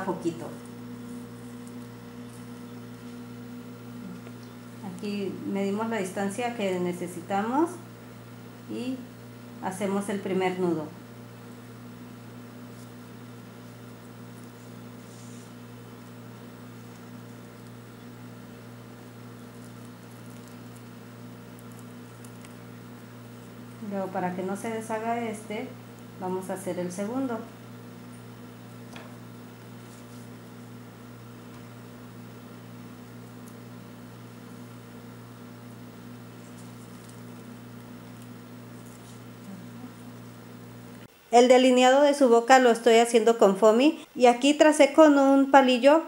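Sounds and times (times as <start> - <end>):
low electrical hum: 0.0 - 46.0
metallic cord rustling: 16.7 - 23.9, 28.1 - 31.9, 33.1 - 40.4
faint ticks and rustles: 18.9 - 23.8.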